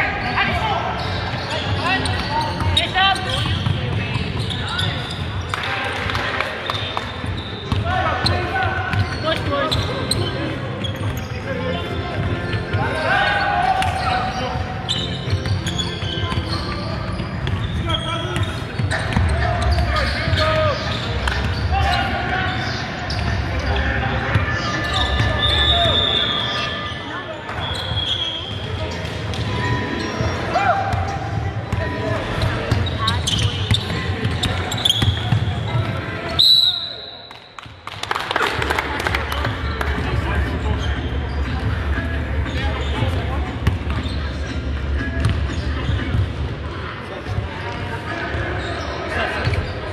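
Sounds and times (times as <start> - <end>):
high-pitched shoe squeaks: 1.0 - 5.5, 6.7 - 11.6, 13.2 - 23.9, 24.6 - 29.0, 29.6 - 30.6, 31.8 - 35.4.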